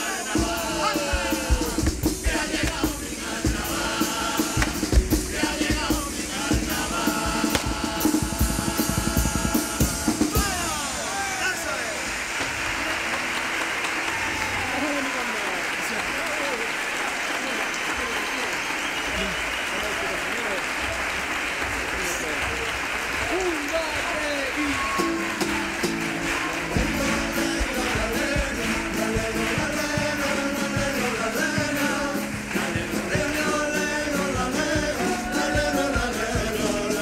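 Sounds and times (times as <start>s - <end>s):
audience applauding and cheering: 0.0s - 37.0s.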